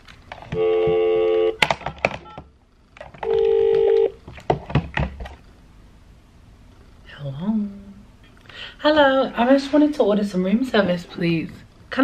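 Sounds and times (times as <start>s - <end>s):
telephone ringing tone: 0.5s - 1.6s, 3.2s - 4.2s.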